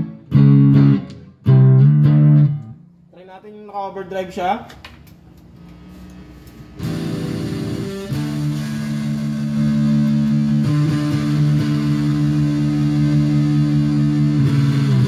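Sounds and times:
distorted electric guitar chords: 0.0 - 2.9, 5.5 - 15.0.

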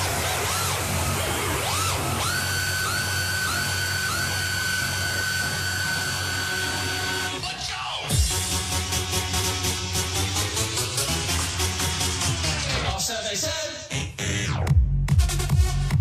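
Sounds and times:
trance music with synth sweeps: 0.0 - 16.0.

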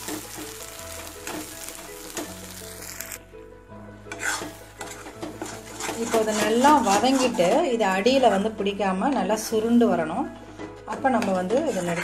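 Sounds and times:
soft sizzle of frying: 0.0 - 3.2, 4.1 - 8.4
ladle scraping pan: 4.1 - 7.8.

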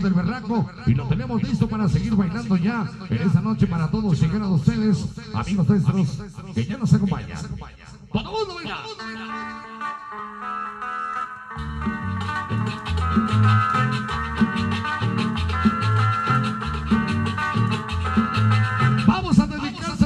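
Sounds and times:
guitar melody: 8.6 - 19.2
bass and percussion dance beat: 11.6 - 20.0.

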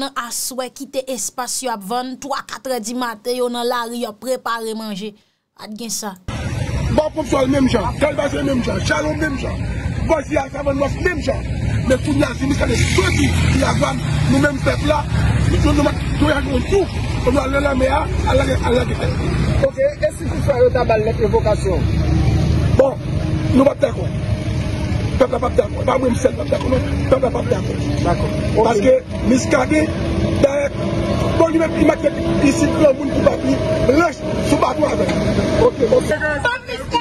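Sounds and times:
man speaking: 6.9 - 21.9, 25.1 - 36.2
man talking: 6.9 - 21.9, 25.1 - 36.1.

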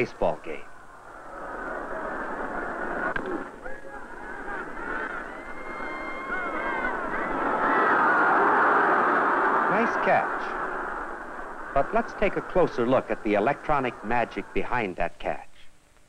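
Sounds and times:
crowd chattering and calling: 0.0 - 15.4
crowd cheering: 0.0 - 15.5.

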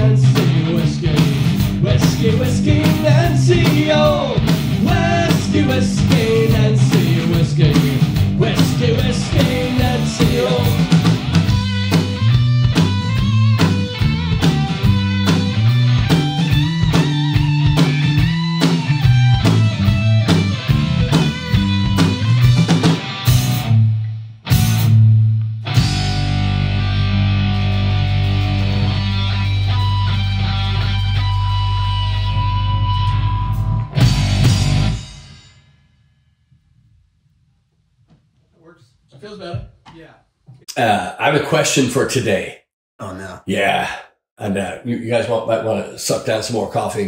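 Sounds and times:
electric guitar: 0.0 - 35.2
bass guitar: 0.0 - 35.4
drum kit: 0.0 - 35.7.

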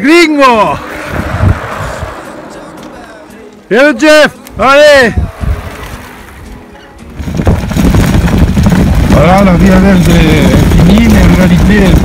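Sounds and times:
wind buffeting microphone: 0.0 - 3.7, 4.5 - 12.0
tyres rolling over gravel: 7.3 - 12.0.

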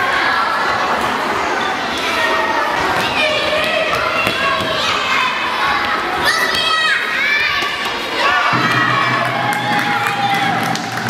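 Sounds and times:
crowd noise: 0.0 - 11.0
girls shouting and cheering: 2.2 - 11.0.

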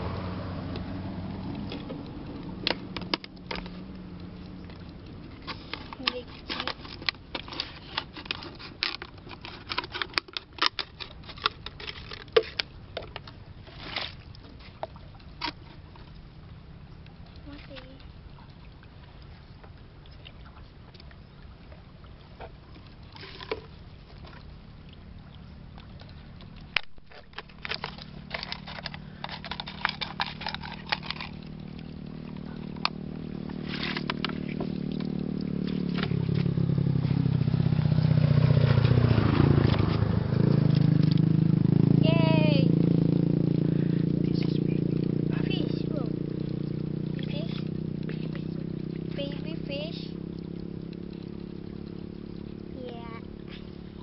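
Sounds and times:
vehicle engine passing: 0.0 - 8.4, 23.2 - 54.0
plastic bottles knocking in water: 32.4 - 36.6.

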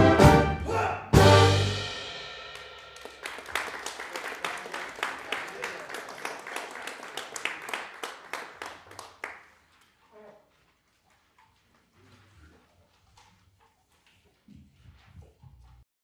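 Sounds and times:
audience clapping: 2.5 - 9.7
faint shuffling: 9.5 - 15.8.

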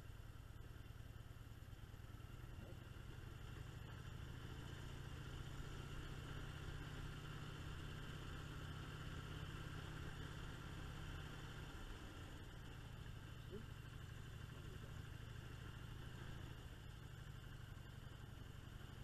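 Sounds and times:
motorcycle engine cruising: 0.0 - 19.0.

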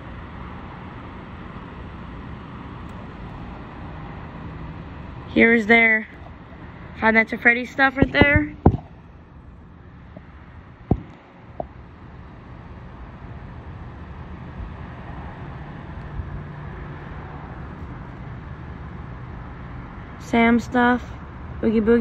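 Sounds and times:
road traffic noise: 0.0 - 22.0
light knocks: 8.0 - 8.9, 10.9 - 11.7.

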